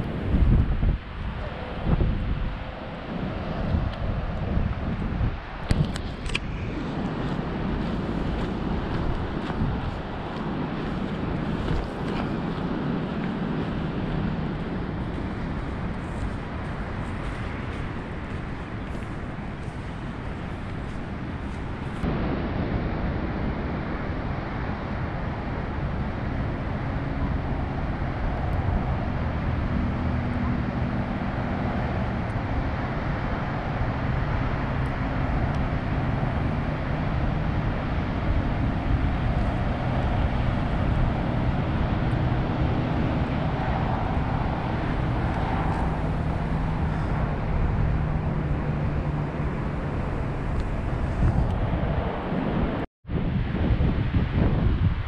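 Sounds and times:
faint road traffic hum: 0:00.0 - 0:55.0
wind on microphone: 0:00.0 - 0:55.0.

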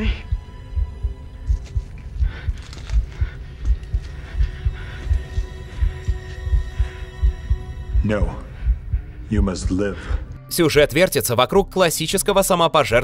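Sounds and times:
low regular thumps: 0:00.0 - 0:10.4.

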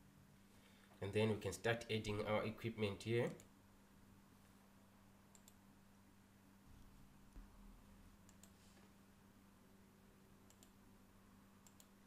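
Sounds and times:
low electrical hum: 0:00.0 - 0:12.0
mouse clicks: 0:05.3 - 0:05.6, 0:10.5 - 0:10.8, 0:11.6 - 0:12.0.

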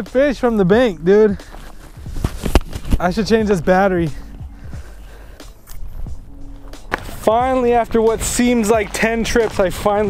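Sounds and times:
footsteps on loose rocks: 0:00.7 - 0:04.8, 0:06.6 - 0:10.0.

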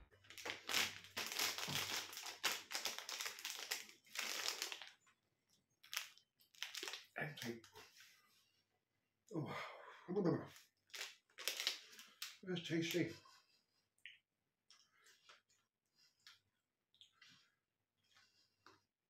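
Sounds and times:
plastic snack packet crinkling: 0:00.2 - 0:05.0, 0:05.8 - 0:07.7, 0:10.5 - 0:13.0.

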